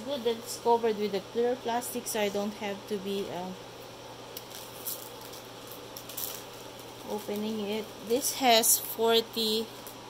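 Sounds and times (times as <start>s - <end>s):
low room hum: 0.0s - 10.0s
plastic film rustling and crinkling: 4.3s - 10.0s.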